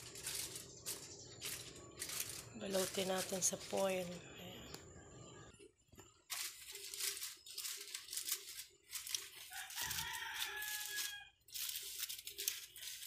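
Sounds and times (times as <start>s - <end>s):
aluminium foil crinkling: 0.0s - 4.4s, 6.0s - 13.0s.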